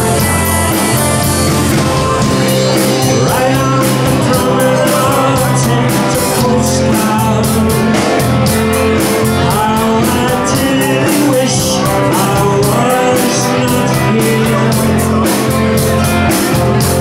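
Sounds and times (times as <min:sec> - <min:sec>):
bass guitar: 0:00.0 - 0:17.0
drums with steady cymbal beat: 0:00.0 - 0:17.0
electric guitar: 0:00.0 - 0:17.0
lead vocal: 0:00.0 - 0:17.0.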